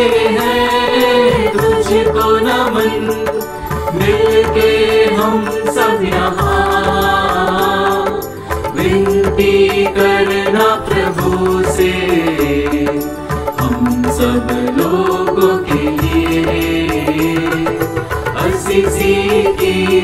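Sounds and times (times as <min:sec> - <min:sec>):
devotional song with steady beat: 0:00.0 - 0:20.0.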